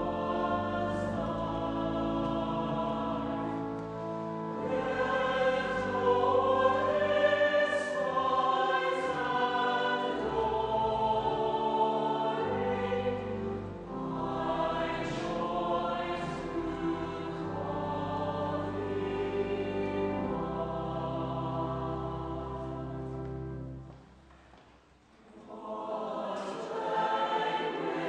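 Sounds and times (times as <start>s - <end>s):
choir singing held chords: 0.0s - 23.9s, 25.2s - 28.0s.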